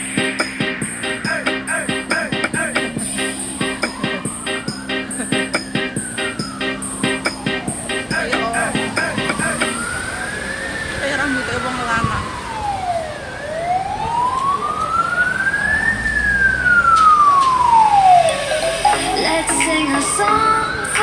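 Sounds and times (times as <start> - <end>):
emergency vehicle siren wailing: 0.0 - 21.0.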